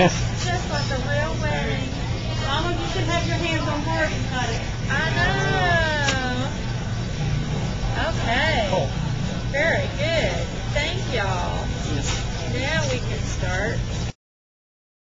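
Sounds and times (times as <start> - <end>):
people speaking and exclaiming: 0.0 - 6.7
low room hum: 0.0 - 14.2.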